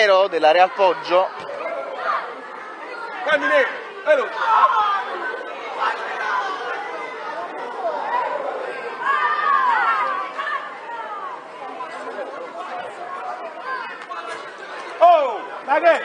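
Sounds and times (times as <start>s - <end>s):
children and adults chattering: 0.0s - 16.0s.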